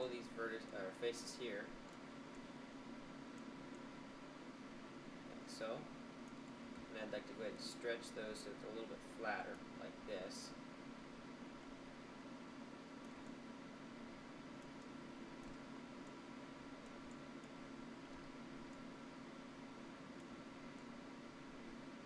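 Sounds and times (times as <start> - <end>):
low hum and hiss: 0.0 - 22.0
computer mouse clicks: 3.3 - 3.9, 13.0 - 13.4, 14.6 - 16.2, 16.8 - 18.9, 20.2 - 20.9.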